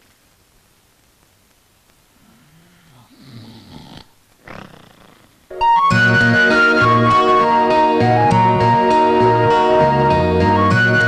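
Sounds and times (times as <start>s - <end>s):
man snoring: 2.2s - 5.4s
sustained keyboard music: 5.5s - 11.0s.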